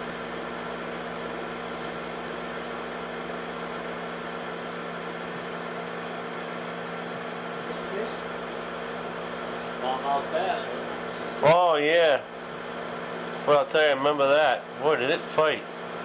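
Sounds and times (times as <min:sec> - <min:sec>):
low electrical hum: 0:00.0 - 0:16.0
projector cooling fan whirring: 0:00.0 - 0:16.0.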